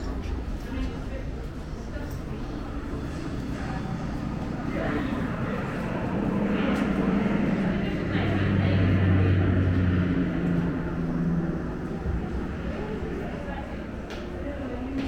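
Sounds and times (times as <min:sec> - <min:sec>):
faint voices: 0:00.0 - 0:15.0
low rumbling drone: 0:00.0 - 0:15.0.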